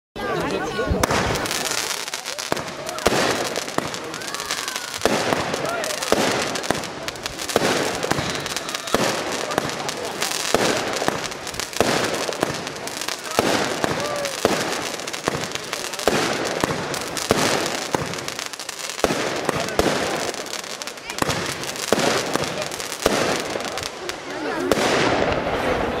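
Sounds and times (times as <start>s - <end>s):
firework shots and bursts: 0.6s - 26.0s.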